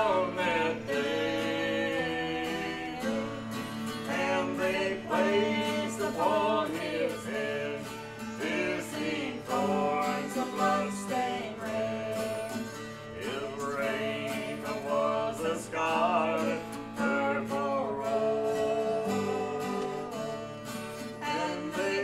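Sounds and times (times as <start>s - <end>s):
person singing gospel song: 0.0s - 20.5s, 21.1s - 22.0s
strummed acoustic guitars: 0.0s - 22.0s.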